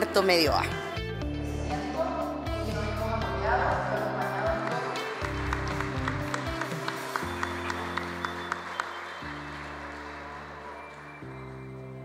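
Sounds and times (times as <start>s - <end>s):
audience applause: 4.6s - 12.0s.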